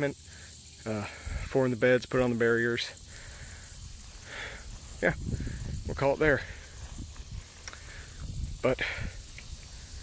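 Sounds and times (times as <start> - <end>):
faint steady high hiss: 0.0 - 10.0.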